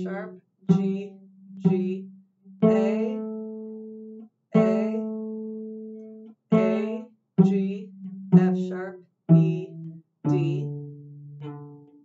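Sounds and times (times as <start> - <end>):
cello plucked notes: 0.0 - 12.0.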